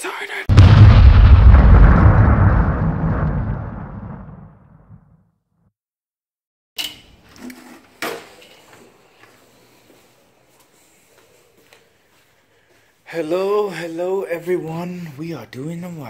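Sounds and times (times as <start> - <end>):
explosion boom: 0.5 - 5.2.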